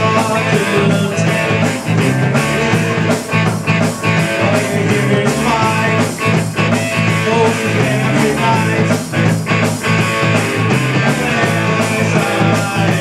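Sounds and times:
drum kit beat: 0.0s - 13.0s
electric guitars: 0.0s - 13.0s.

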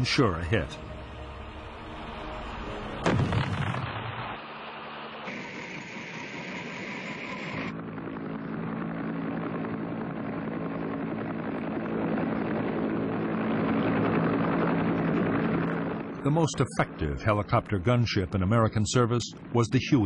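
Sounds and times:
helicopter engine and rotor: 4.4s - 20.0s.

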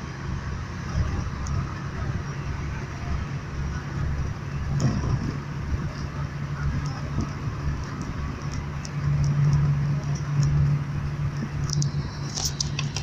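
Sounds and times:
vehicle engine and road noise: 0.0s - 13.0s.

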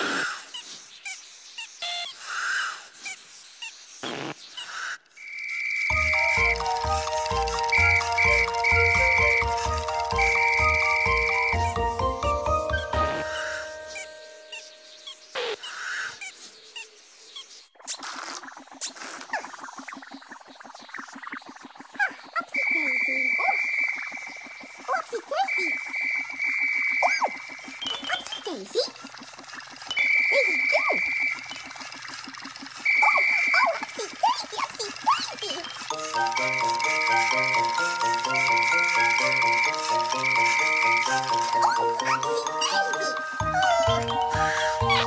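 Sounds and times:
high held whistle tones: 5.4s - 11.7s, 22.5s - 23.9s, 38.2s - 41.4s.

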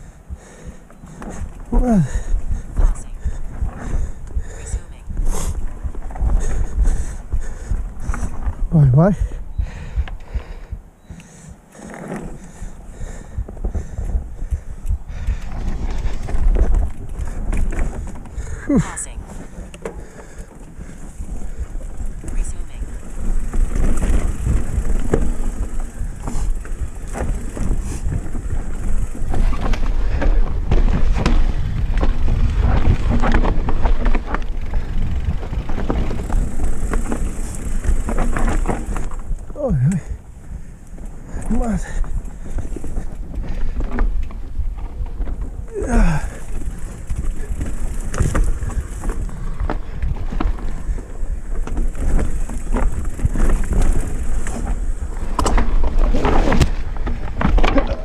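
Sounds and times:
bike rattling over rocks: 0.0s - 58.0s
wind and tyre rumble: 0.0s - 58.0s.

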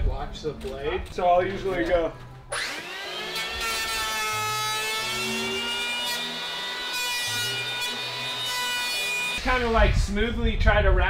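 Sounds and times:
electric planer whining: 2.5s - 9.4s.

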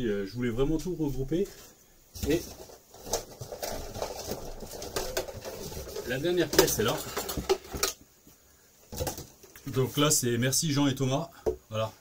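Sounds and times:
boxes knocking and rustling: 1.4s - 8.1s, 8.8s - 9.9s.

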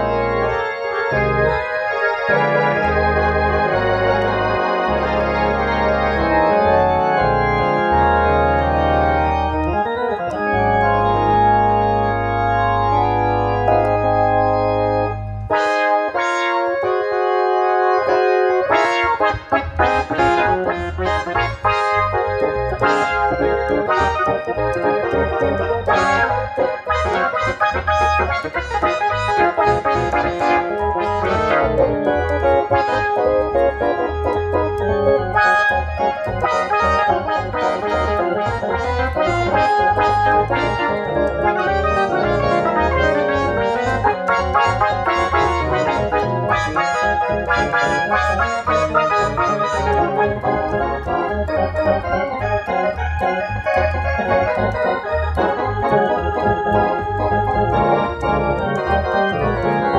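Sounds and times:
low pedal-bass notes: 0.0s - 59.9s
organ playing chords: 0.0s - 59.9s.

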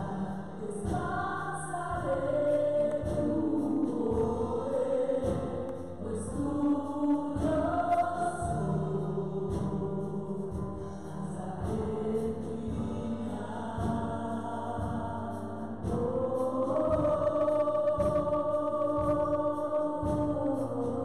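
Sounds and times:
women singing gospel song: 0.0s - 21.0s.

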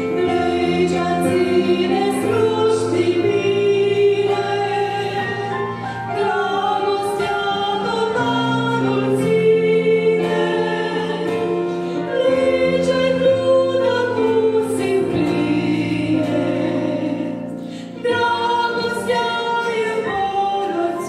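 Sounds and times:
women singing a hymn duet: 0.0s - 21.0s.

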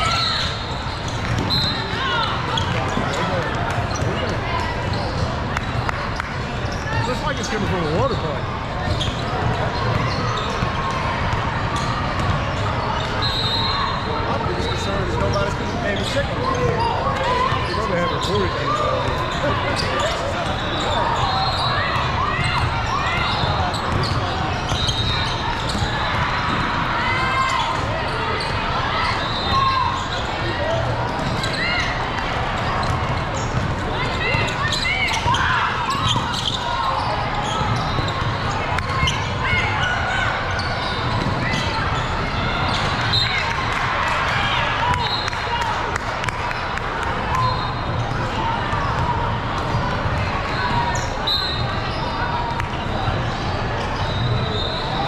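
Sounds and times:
murmur of voices: 0.0s - 55.0s
sneakers squeaking: 0.0s - 55.0s
basketball bouncing: 9.4s - 12.5s, 32.8s - 34.6s, 41.0s - 43.0s.

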